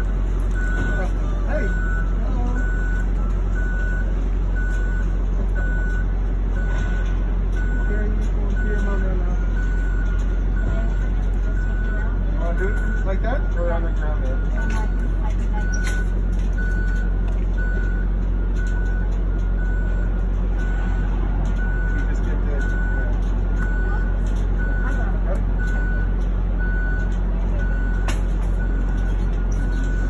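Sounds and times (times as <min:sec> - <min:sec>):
low engine drone: 0:00.0 - 0:30.0
reversing alarm beeping: 0:00.0 - 0:30.0.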